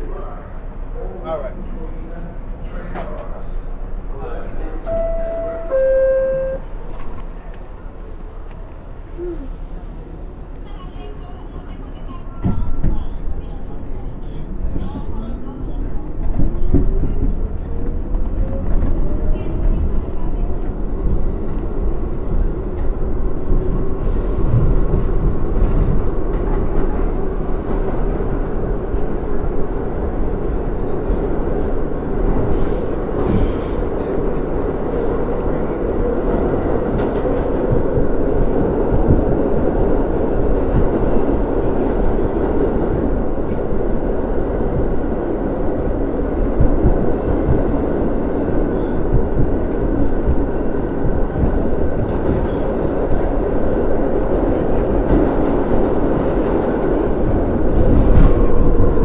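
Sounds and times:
subway train rumble: 0:00.0 - 0:59.0.

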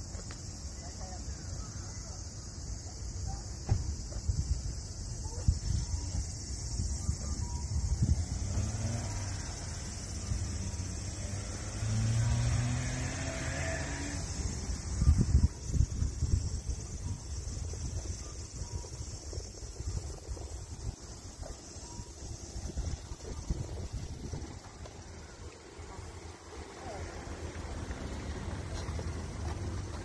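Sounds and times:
high-pitched insect chorus: 0:00.0 - 0:30.0
low wind: 0:00.0 - 0:30.0
vehicle engine: 0:05.2 - 0:30.0.

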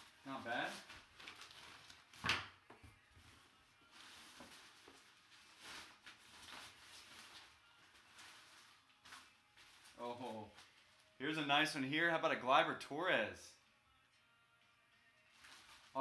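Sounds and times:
cloth bag and plastic rustling: 0:00.0 - 0:02.3, 0:03.5 - 0:11.2, 0:15.3 - 0:16.0.

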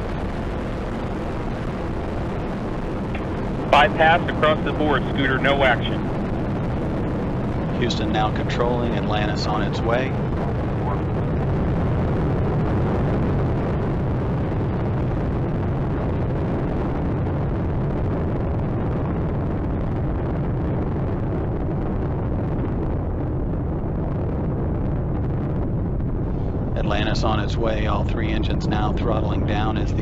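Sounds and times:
deep rocket engine roar: 0:00.0 - 0:30.0.

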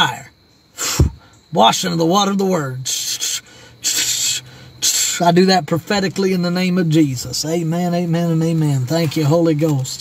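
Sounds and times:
man hissing out breath: 0:00.8 - 0:01.4, 0:03.4 - 0:04.8.

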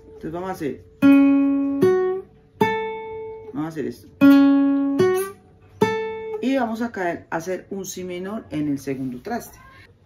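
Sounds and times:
classical guitar notes plucked: 0:00.0 - 0:07.2.

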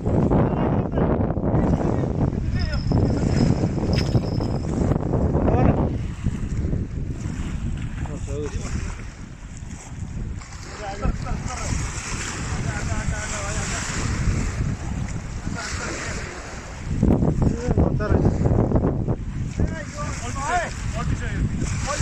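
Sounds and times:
wind buffeting microphone: 0:00.0 - 0:22.0
waves lapping on rocks: 0:01.7 - 0:22.0.

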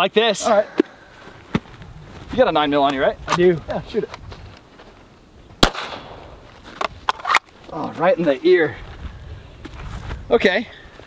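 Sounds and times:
pistol shot with echo: 0:05.6 - 0:06.4.

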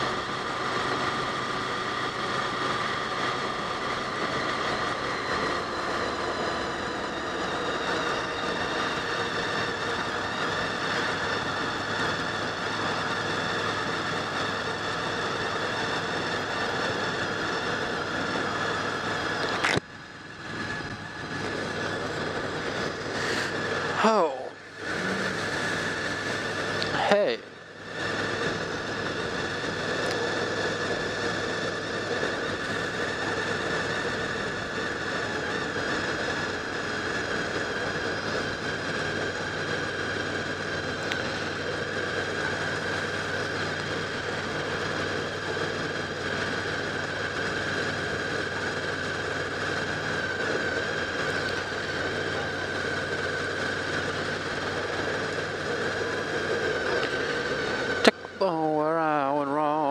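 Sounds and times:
motorcycle engine cruising: 0:00.0 - 0:59.9
road noise: 0:00.0 - 0:59.9.

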